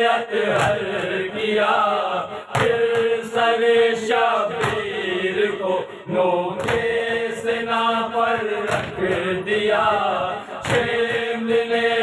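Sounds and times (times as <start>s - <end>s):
men chanting in unison: 0.0s - 12.0s
hands beating on chests: 6.6s - 7.0s.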